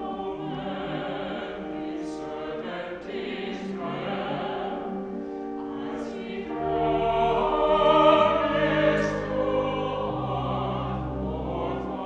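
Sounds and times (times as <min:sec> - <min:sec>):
choir singing sustained chords: 0:00.0 - 0:12.0.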